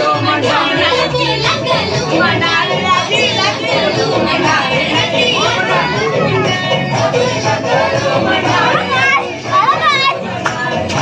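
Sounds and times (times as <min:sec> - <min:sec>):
children shouting: 0:00.0 - 0:10.7
dance song from loudspeaker: 0:00.0 - 0:11.0.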